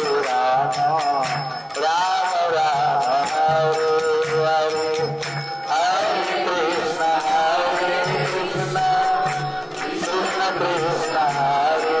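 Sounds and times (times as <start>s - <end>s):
devotional chanting: 0.0s - 12.0s
hand cymbals struck: 0.0s - 12.0s.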